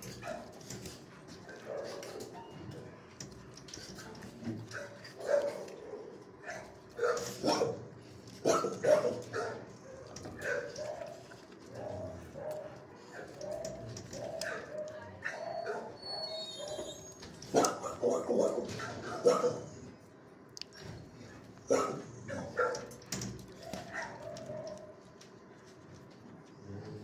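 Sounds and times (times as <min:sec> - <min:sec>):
dogs barking: 0:00.0 - 0:02.4, 0:04.6 - 0:19.8, 0:21.6 - 0:25.1
dogs yipping: 0:08.4 - 0:19.8, 0:21.7 - 0:22.9, 0:23.5 - 0:25.0.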